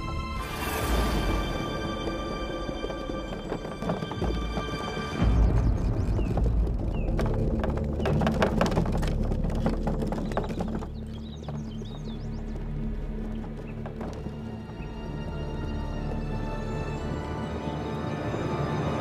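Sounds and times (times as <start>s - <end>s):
horse hooves clip-clopping: 0.0s - 18.4s
background music: 0.0s - 19.0s.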